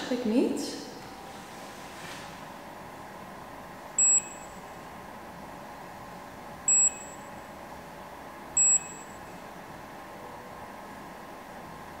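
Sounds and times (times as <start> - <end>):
short high-pitched electronic beeps: 4.0 - 4.6, 6.7 - 7.3, 8.6 - 9.2.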